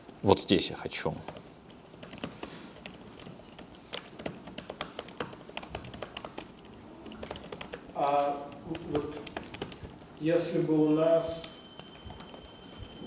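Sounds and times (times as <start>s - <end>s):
computer keyboard typing: 1.2s - 13.0s.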